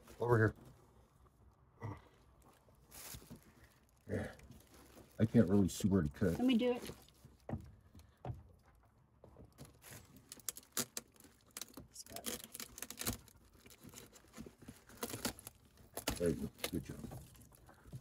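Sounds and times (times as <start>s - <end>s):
plastic crinkling: 2.4s - 7.6s, 9.5s - 18.0s.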